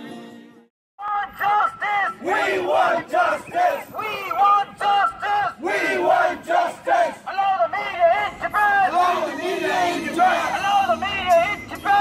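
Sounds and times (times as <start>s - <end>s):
man shouting through megaphone: 1.0s - 12.0s
crowd chanting slogans: 1.4s - 12.0s.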